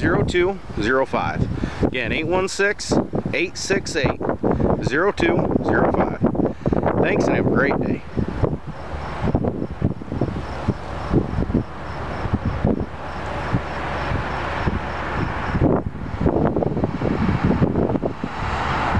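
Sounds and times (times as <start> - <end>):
steady low hum: 0.0 - 18.3
wind buffeting microphone: 0.0 - 18.9.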